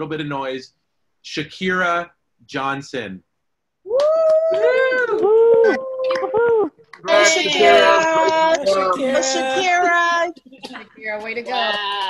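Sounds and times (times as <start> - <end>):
people whooping and cheering: 3.9 - 9.3.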